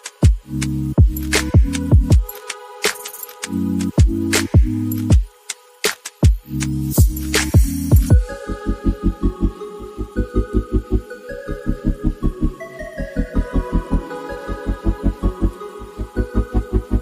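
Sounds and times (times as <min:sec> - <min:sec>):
electronic music with bass beat: 0:00.0 - 0:17.0.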